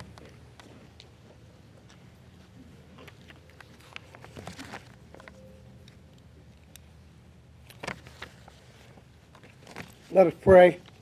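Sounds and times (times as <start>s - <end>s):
steady low hum: 0.0s - 11.0s
rustling papers near microphone: 3.1s - 5.4s, 7.6s - 11.0s.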